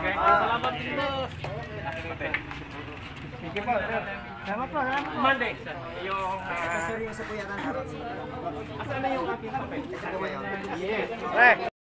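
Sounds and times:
overlapping chatter of voices: 0.0s - 11.7s.

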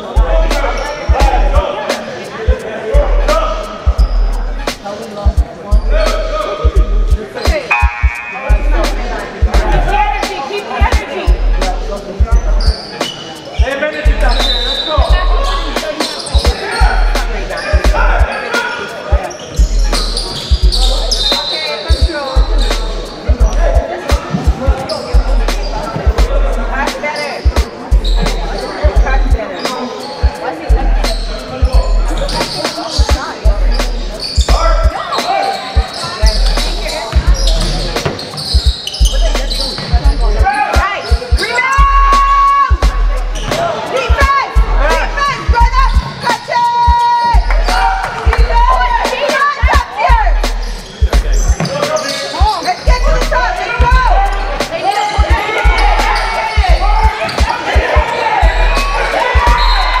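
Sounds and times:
music with heavy bass beat: 0.0s - 12.7s, 13.6s - 18.3s, 19.1s - 21.4s, 22.0s - 29.5s, 30.6s - 35.2s, 35.8s - 51.6s, 52.4s - 60.0s
voices: 0.0s - 60.0s.

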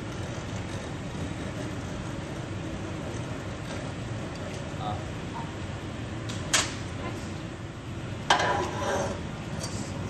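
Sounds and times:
low roar of equipment: 0.0s - 10.0s.

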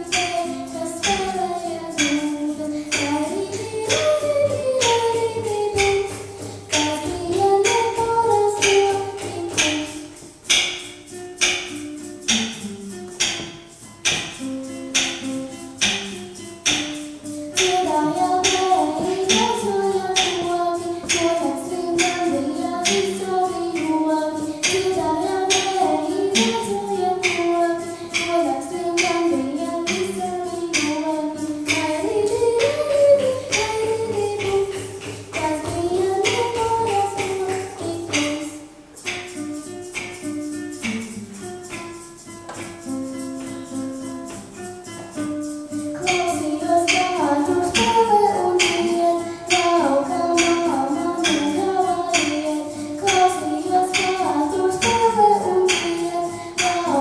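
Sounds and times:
girl singing: 0.0s - 10.7s, 15.2s - 42.3s, 43.1s - 57.0s
acoustic guitar chords: 0.0s - 57.0s.

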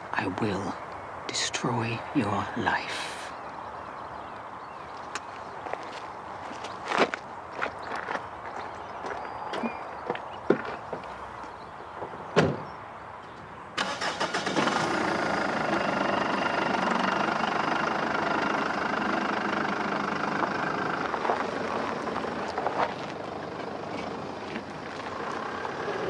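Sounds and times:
car engine starting and running: 13.8s - 26.0s.

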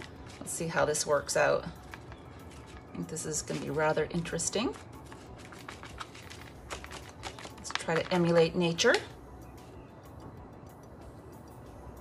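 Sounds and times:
fingers tapping and rustling paper: 0.0s - 9.1s.

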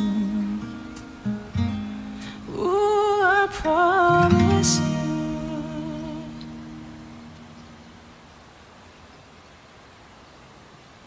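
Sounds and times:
man singing with vibrato: 0.0s - 1.0s, 2.4s - 6.5s
acoustic guitar chord ringing: 0.0s - 8.1s.

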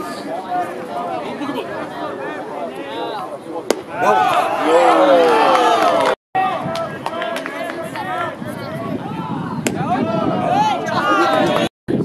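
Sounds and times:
crowd chatter: 0.0s - 11.7s.

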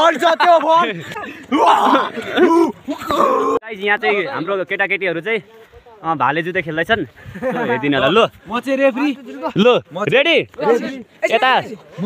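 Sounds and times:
young men talking: 0.0s - 12.0s.

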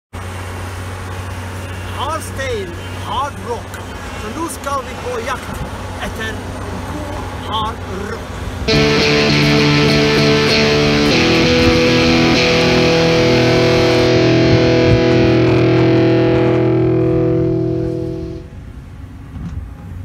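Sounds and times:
distorted electric guitar chords: 8.7s - 18.5s.

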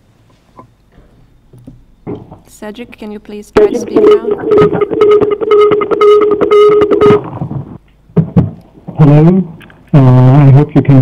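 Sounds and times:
buzzing tone with crackling: 0.5s - 8.3s.

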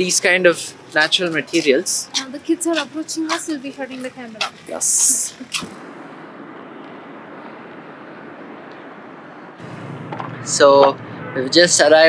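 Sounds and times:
outdoor rushing background noise: 0.0s - 12.0s.

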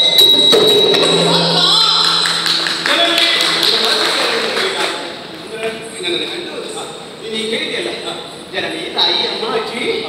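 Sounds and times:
steady low drone tone: 0.0s - 5.8s.

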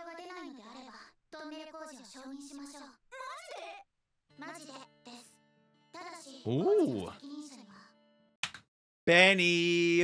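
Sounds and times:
character speaking: 6.4s - 7.2s.

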